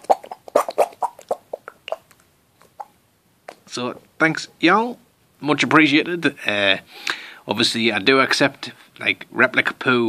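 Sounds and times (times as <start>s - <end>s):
squeeze toy squelching: 0.0s - 3.7s.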